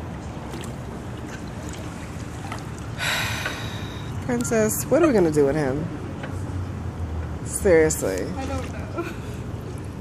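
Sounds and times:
pool water splashing: 0:00.0 - 0:07.0, 0:07.6 - 0:10.0.

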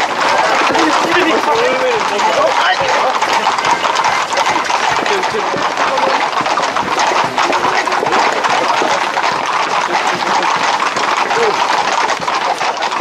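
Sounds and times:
horse hooves on dirt: 0:00.0 - 0:13.0.

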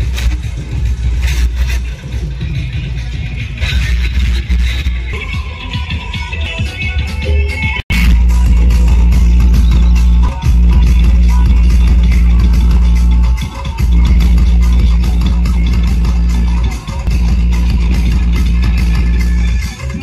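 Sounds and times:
loud heavy bass music from speakers: 0:00.0 - 0:20.0.

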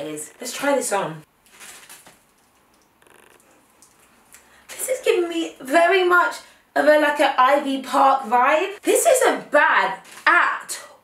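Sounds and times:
zip being pulled: 0:03.0 - 0:03.6.

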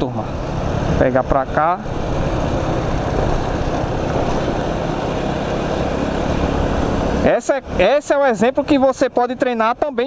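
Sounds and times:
motorcycle engine running: 0:00.0 - 0:09.8.

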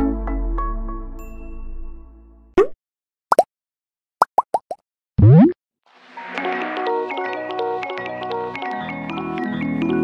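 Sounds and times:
cartoon plop sound effects: 0:02.6 - 0:03.5, 0:04.3 - 0:05.6.

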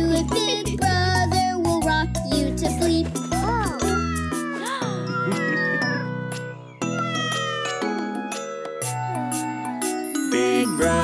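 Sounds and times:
soft children's music: 0:00.0 - 0:11.0
cartoon kitten meowing: 0:03.7 - 0:06.1, 0:07.0 - 0:08.0.

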